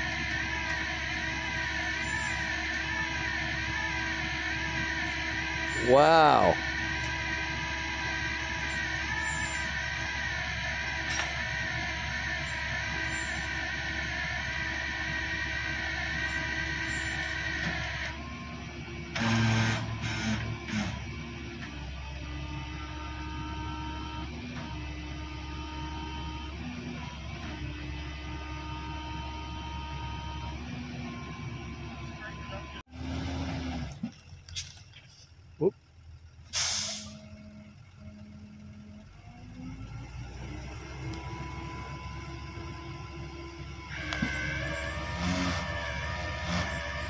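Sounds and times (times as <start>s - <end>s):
tow truck engine and hydraulics whine: 0.0s - 47.0s.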